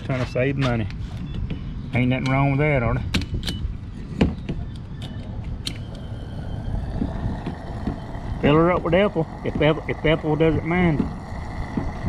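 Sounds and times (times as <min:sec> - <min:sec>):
gasoline flowing with hiss: 0:05.8 - 0:12.0.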